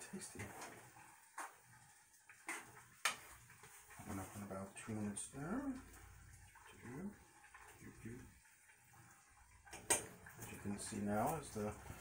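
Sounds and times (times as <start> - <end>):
stirring noodles in boiling water: 0.0 - 12.0.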